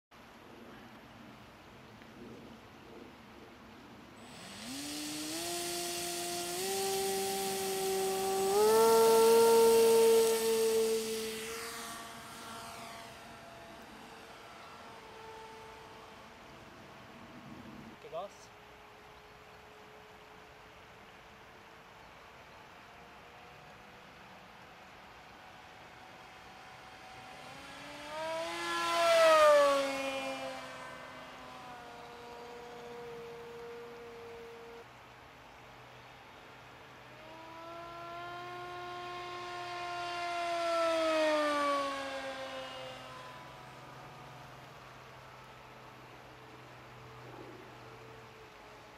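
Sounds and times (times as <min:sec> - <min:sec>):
model plane electric motor whine: 0:04.2 - 0:18.0, 0:25.0 - 0:35.0, 0:36.8 - 0:48.9.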